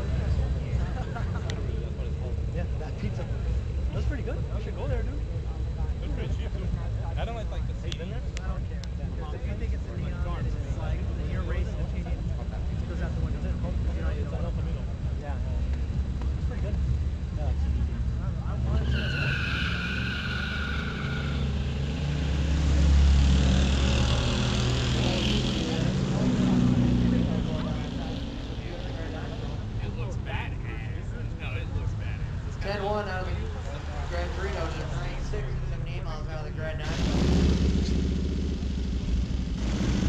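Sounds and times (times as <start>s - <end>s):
cars accelerating hard: 17.8s - 30.0s, 36.7s - 40.0s
tires squealing: 18.4s - 29.6s.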